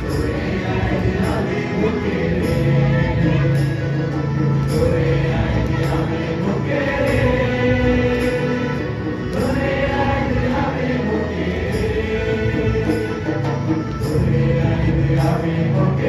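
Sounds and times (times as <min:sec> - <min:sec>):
choir singing gospel song: 0:00.0 - 0:16.0.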